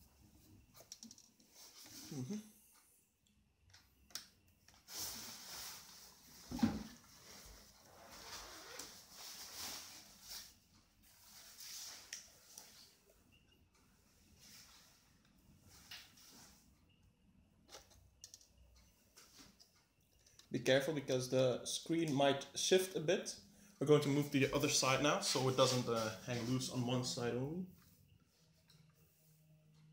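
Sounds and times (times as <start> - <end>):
soft rustling: 24.3 - 29.9.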